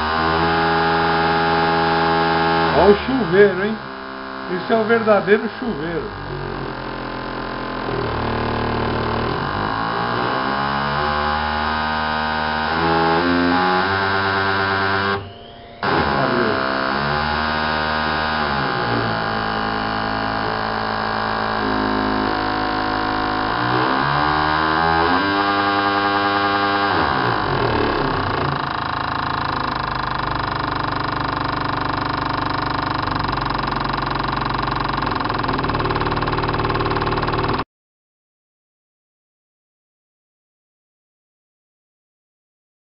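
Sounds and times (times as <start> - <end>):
fuel injectors pulsing buzz: 0.0 - 37.6.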